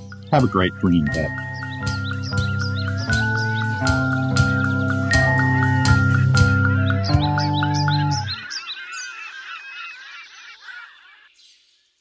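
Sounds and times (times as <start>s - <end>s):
music held notes: 0.0s - 8.4s
chorus of bird calls: 0.0s - 12.0s.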